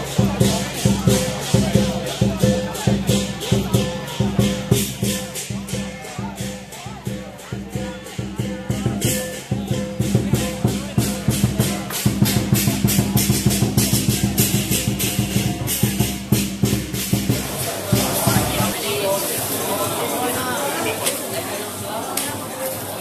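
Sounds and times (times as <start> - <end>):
fast beat music: 0.0 - 19.0
people talking: 0.0 - 23.0
shaker percussion: 0.0 - 23.0.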